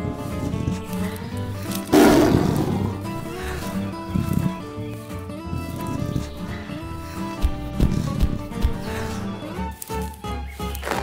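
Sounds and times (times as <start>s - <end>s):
background music: 0.0s - 11.0s
lion roar: 1.9s - 4.6s.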